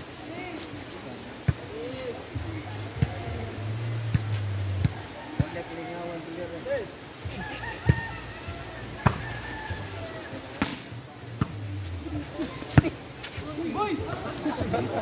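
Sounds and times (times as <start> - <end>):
voices of players and onlookers: 0.0 - 15.0.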